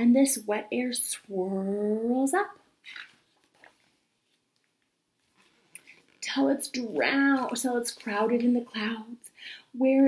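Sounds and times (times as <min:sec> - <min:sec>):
book page turning: 0:02.9 - 0:06.2.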